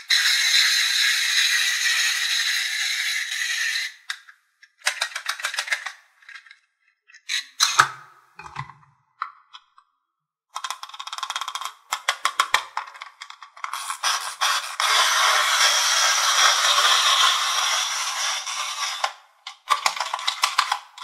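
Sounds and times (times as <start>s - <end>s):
clockwork motor whirring: 0.1s - 4.1s, 13.8s - 19.2s.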